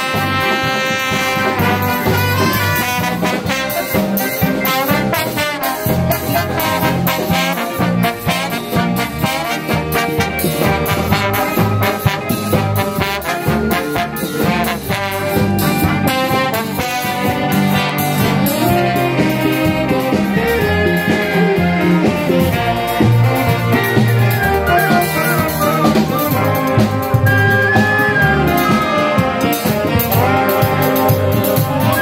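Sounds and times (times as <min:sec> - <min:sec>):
big band playing swing: 0:00.0 - 0:32.0.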